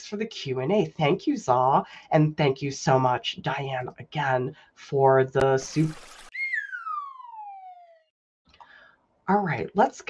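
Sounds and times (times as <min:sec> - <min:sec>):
whistle tone gliding downward: 0:06.1 - 0:08.1.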